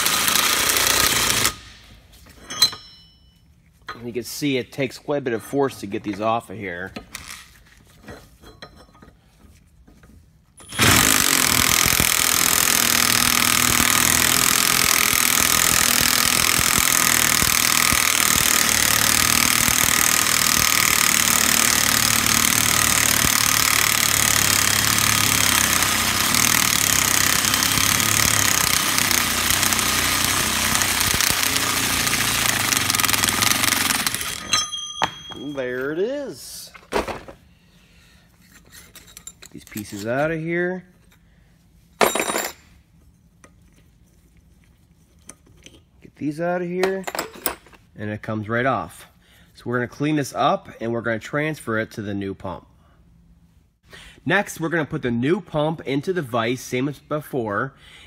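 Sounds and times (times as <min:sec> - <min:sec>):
impact wrench hammering: 0:00.0 - 0:01.8, 0:10.6 - 0:35.6.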